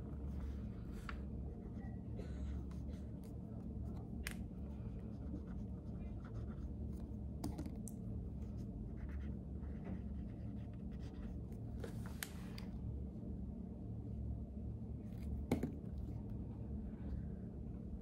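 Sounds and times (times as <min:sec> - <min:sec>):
low room hum: 0:00.0 - 0:18.0
pen scratching on paper: 0:05.0 - 0:07.1.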